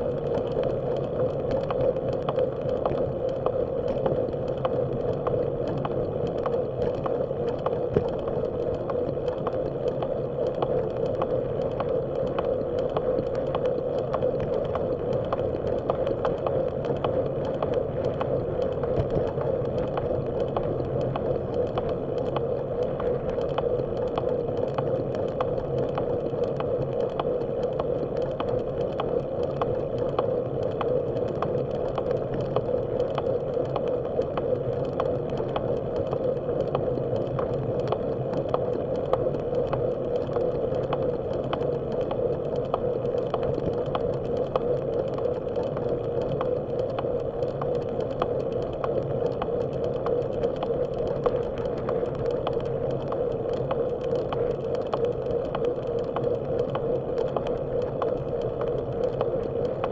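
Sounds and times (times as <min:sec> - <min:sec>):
rumble of tyres and wind: 0:00.0 - 0:59.9
regular ticking: 0:00.3 - 0:59.9.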